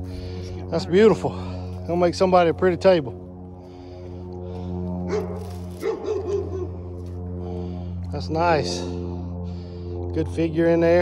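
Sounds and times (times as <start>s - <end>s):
low droning hum: 0.0s - 11.0s.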